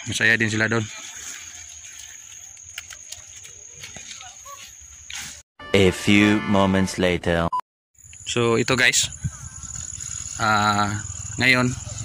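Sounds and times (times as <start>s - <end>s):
high-pitched insect drone: 8.0s - 12.0s.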